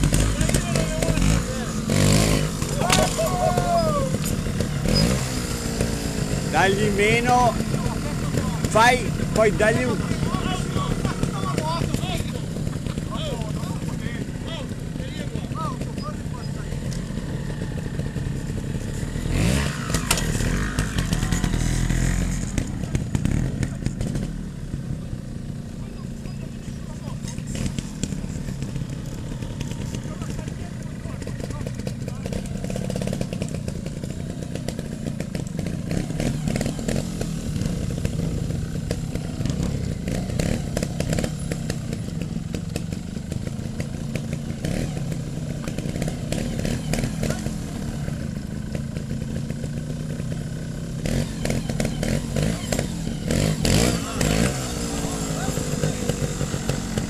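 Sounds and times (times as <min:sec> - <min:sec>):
motorcycle engines idling and revving: 0:00.0 - 0:57.0.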